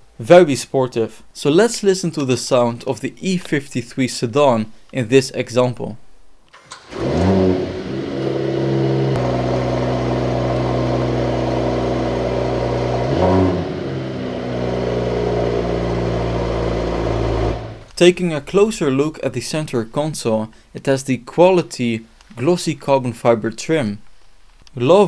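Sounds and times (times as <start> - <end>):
car engine starting and idling: 6.5 - 17.9.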